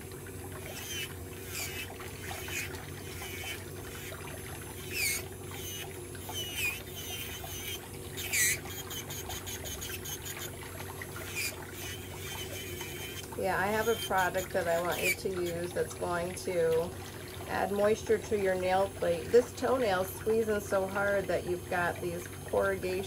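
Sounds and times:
electric nail drill running: 0.0s - 16.9s, 17.5s - 23.0s
high squeaks of drill bit: 0.7s - 4.1s, 4.8s - 10.6s, 11.2s - 15.6s.

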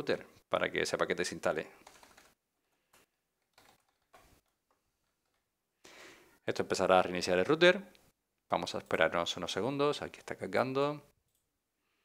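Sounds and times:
keyboard clicks: 1.8s - 5.4s.

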